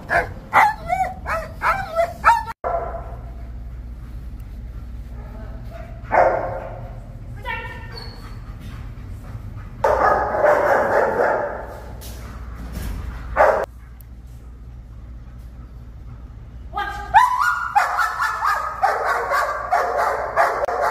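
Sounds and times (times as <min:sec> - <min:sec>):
dog barking: 0:00.0 - 0:03.1, 0:06.0 - 0:06.8, 0:09.8 - 0:11.7, 0:13.4 - 0:13.7, 0:17.2 - 0:20.9.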